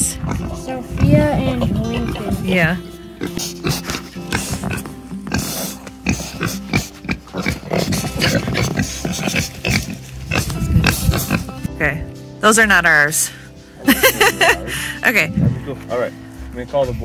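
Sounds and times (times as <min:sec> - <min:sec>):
pigs grunting: 0:00.0 - 0:11.7
background music: 0:00.0 - 0:17.0.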